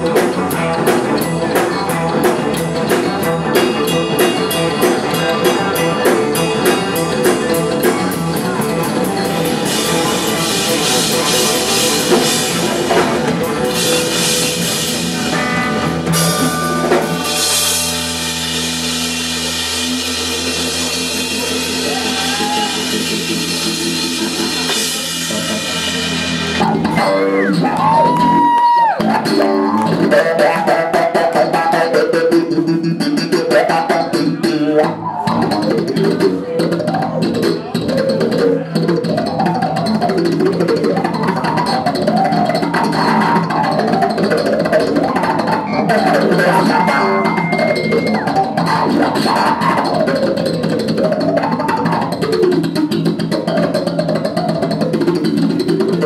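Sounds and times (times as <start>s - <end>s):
electric bass and guitar chord: 0.0s - 27.9s
electric bass: 0.0s - 56.0s
live band music: 0.0s - 56.0s.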